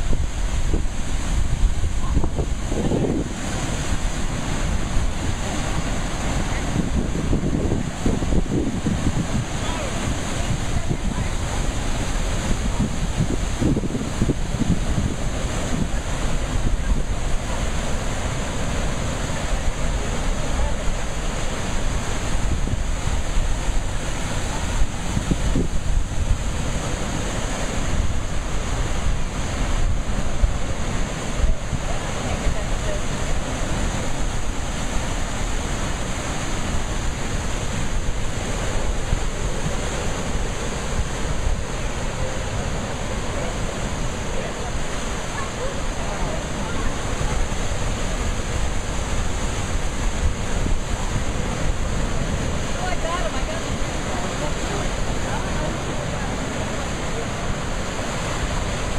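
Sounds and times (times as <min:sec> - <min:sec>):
surf breaking over rocks: 0:00.0 - 0:58.9
wind buffeting microphone: 0:00.0 - 0:58.9.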